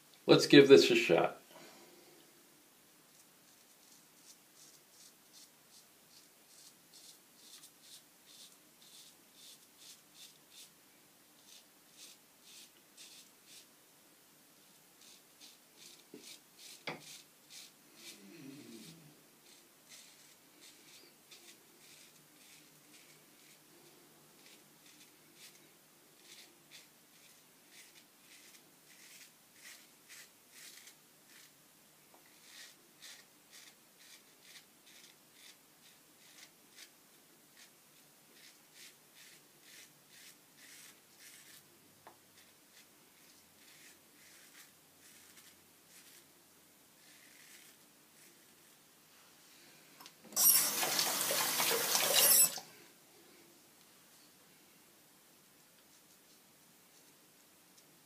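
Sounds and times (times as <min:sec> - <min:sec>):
razor scraping lathered stubble: 0:03.2 - 0:10.7, 0:11.4 - 0:13.7, 0:15.0 - 0:23.6, 0:24.4 - 0:31.6, 0:32.2 - 0:36.9, 0:38.4 - 0:41.6, 0:42.4 - 0:46.3, 0:47.0 - 0:48.8, 0:50.3 - 0:52.6
tap running: 0:50.3 - 0:52.6.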